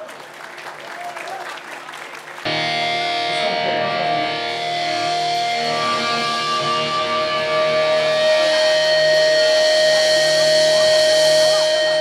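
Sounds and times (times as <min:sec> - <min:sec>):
electric guitars droning: 0:02.5 - 0:12.0.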